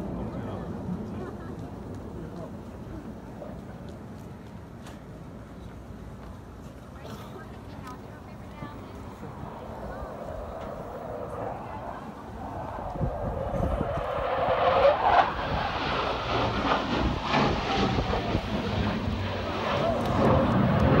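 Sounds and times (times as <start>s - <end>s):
jet engine passing low: 7.4s - 21.0s.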